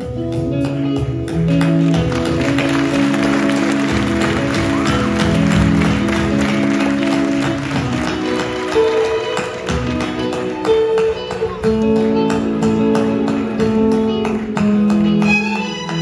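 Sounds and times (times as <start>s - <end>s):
drums and percussion: 0.0s - 16.0s
keyboard chords: 0.0s - 16.0s
audience applauding: 1.5s - 11.5s.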